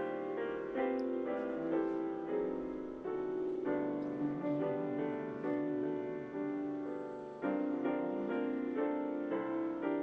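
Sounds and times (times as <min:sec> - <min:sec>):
piano chords over a phone line: 0:00.0 - 0:10.0.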